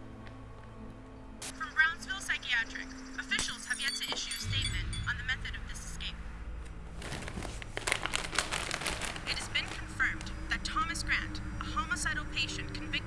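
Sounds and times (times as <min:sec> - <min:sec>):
low steady hum: 0:00.0 - 0:13.0
leather couch rustling: 0:06.8 - 0:09.8.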